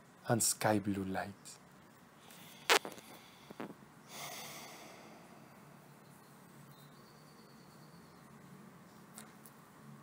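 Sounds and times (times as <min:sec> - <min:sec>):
person breathing: 0:02.2 - 0:05.8.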